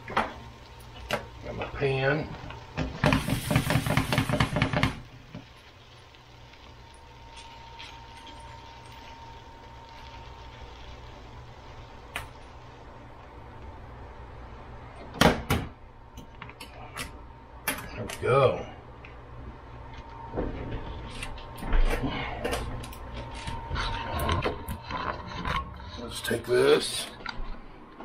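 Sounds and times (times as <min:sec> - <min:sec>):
pan knocking on stovetop: 0:02.8 - 0:05.0
steady low hum: 0:04.9 - 0:28.0.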